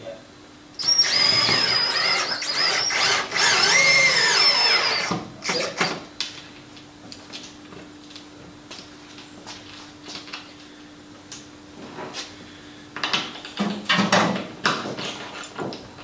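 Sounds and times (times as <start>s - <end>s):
cordless drill whining: 0.8s - 6.0s.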